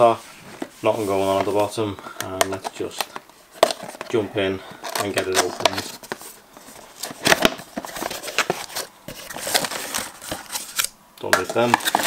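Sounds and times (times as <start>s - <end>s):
cardboard box scraping and rustling: 4.8s - 10.8s.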